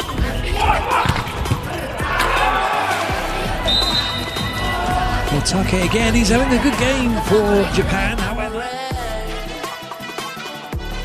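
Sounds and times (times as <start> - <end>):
players shouting: 0.0 - 8.8
arena music: 0.0 - 11.0
referee whistle blast: 3.6 - 4.8.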